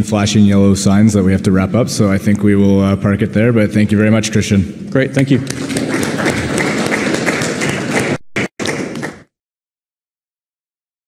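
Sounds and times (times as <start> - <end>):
audience applauding: 5.5 - 9.3.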